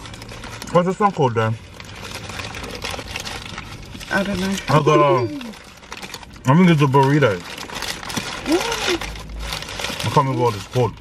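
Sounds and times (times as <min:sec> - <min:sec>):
chewing and crunching taco: 0:00.0 - 0:11.0.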